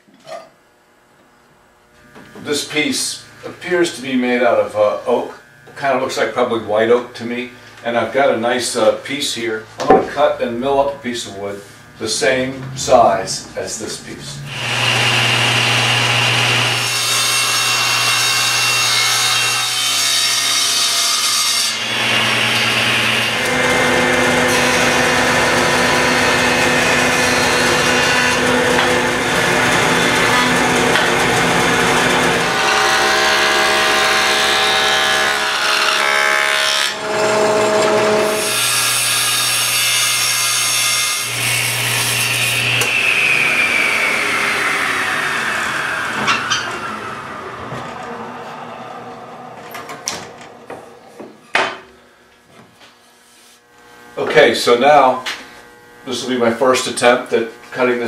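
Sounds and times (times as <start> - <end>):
jointer planing wood: 14.2 - 52.7
table saw ripping wood: 14.4 - 48.6
machine spinning down whine: 43.4 - 51.4.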